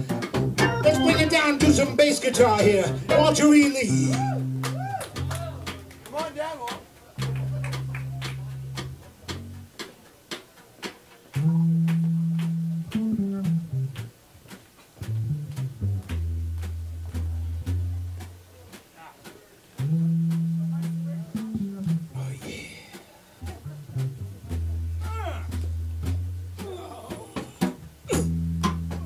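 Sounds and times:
electric bass guitar solo: 0:00.0 - 0:06.1, 0:07.2 - 0:09.7, 0:11.3 - 0:14.1, 0:15.0 - 0:18.5, 0:19.8 - 0:22.6, 0:23.4 - 0:29.0
light drum beat: 0:00.0 - 0:29.0.

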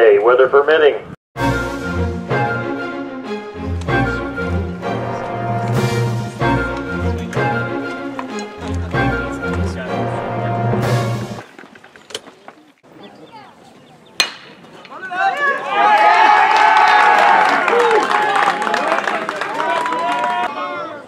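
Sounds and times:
background music: 0:01.4 - 0:11.4
metal bat hitting ball: 0:14.2 - 0:14.6
spectators cheering and shouting: 0:14.9 - 0:21.0.

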